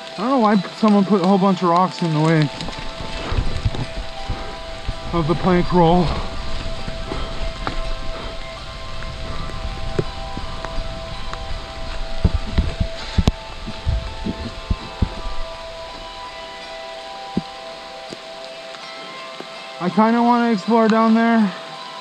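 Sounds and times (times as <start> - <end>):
bike tyre rumble: 0.0 - 18.5
steady ringing tone: 0.0 - 22.0
wind on microphone: 2.3 - 18.5.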